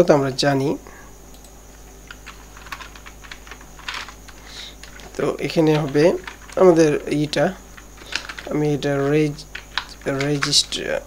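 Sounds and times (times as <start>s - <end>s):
low steady hum: 0.0s - 11.0s
computer keyboard typing: 1.3s - 11.0s.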